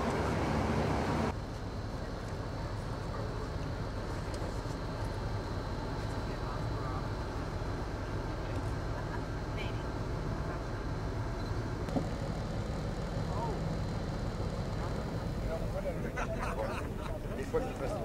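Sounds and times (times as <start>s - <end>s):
bus rumbling from inside: 0.0s - 18.0s
faint passenger voices: 1.6s - 11.4s, 13.2s - 13.8s, 14.8s - 18.0s.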